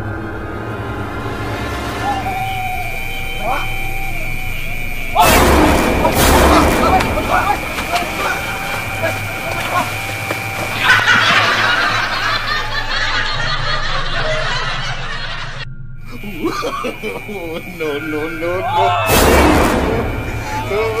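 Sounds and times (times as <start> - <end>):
steady high electronic tone: 0.0 - 21.0
people shouting and screaming: 1.8 - 12.6, 16.2 - 21.0
loud boom: 5.0 - 10.0, 16.0 - 21.0.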